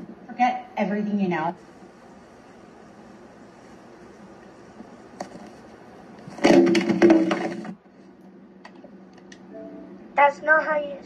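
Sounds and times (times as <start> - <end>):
cracking crunching noise: 5.2 - 7.8.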